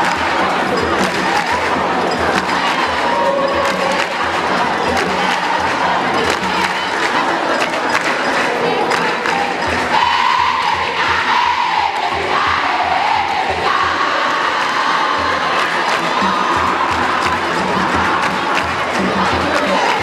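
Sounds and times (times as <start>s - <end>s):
crowd of girls singing chant: 0.0s - 20.0s.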